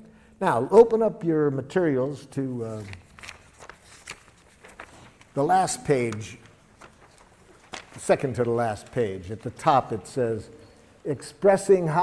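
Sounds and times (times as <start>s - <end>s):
paper rustling: 2.5s - 10.9s.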